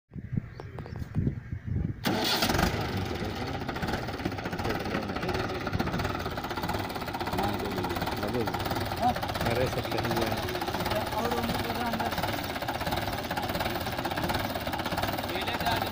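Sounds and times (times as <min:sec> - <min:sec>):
tractor diesel engine running: 0:02.0 - 0:15.9.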